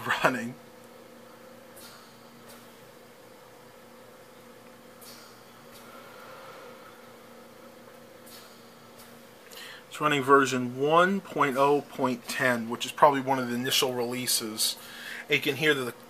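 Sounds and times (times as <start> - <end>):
desktop computer humming: 0.0 - 16.0.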